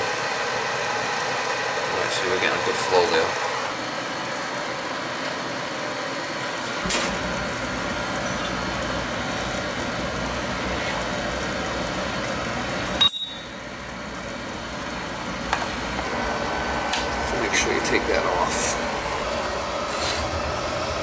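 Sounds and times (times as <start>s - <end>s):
oil burner running: 0.0s - 21.0s
metallic clink with ring: 13.0s - 13.8s.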